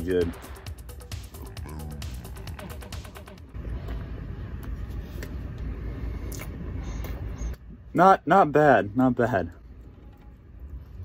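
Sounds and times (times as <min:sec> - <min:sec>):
mouth clicks: 0:01.2 - 0:03.2.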